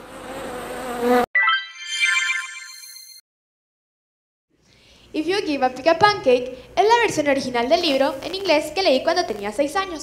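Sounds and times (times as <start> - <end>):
bright rising chime: 1.4 - 3.2.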